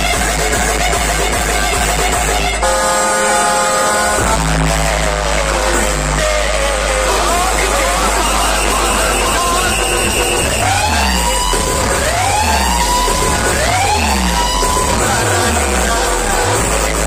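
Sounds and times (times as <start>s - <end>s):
dance music with heavy bass: 0.0s - 17.0s
rising siren-like sweeps: 6.7s - 16.4s.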